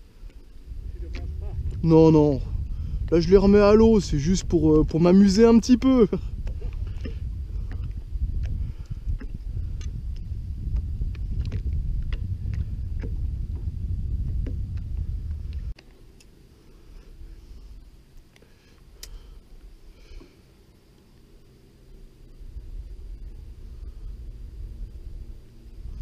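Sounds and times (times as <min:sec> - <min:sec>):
wind buffeting microphone: 0:00.0 - 0:15.8, 0:22.0 - 0:26.0.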